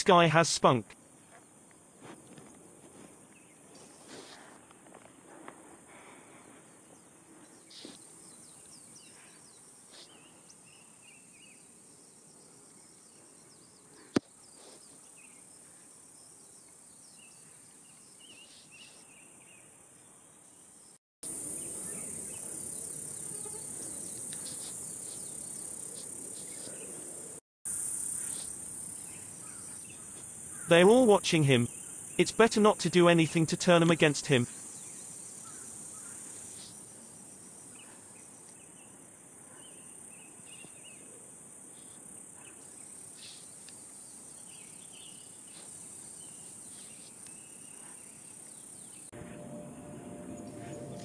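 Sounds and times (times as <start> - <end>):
insects droning: 0.0 - 51.0
short insect calls: 5.9 - 20.0, 20.7 - 32.8, 34.0 - 49.6.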